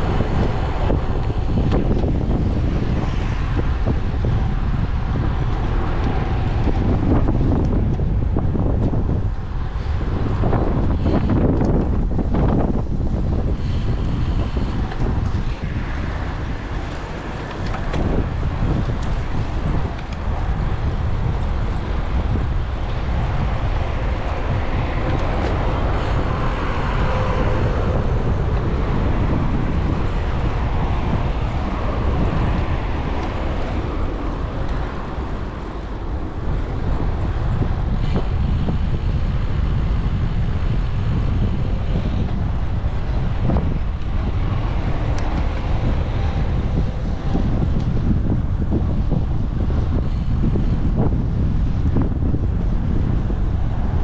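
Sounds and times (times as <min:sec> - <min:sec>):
road traffic: 0:00.0 - 0:54.0
wind rushing over microphone: 0:00.0 - 0:54.0.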